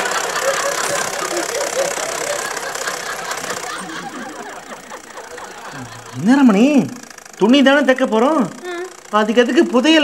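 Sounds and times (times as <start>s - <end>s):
sewing machines clattering: 0.0s - 10.0s.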